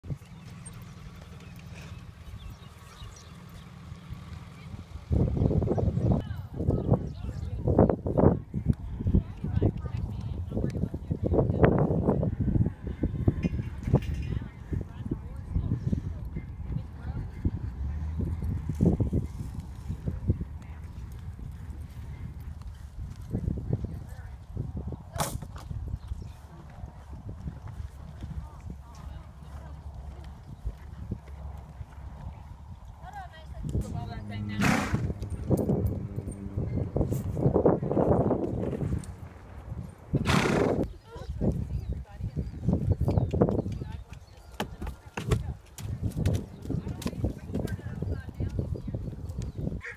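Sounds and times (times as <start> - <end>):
horse hoofbeats on soft dirt: 0.0 - 5.1, 25.4 - 49.9
horse breathy snort: 34.2 - 37.4, 40.2 - 40.9
hoof thuds on dirt: 42.8 - 47.9.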